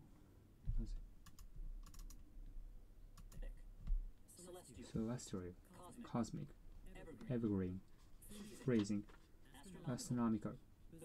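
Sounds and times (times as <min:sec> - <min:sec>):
person speaking: 0:04.3 - 0:11.0.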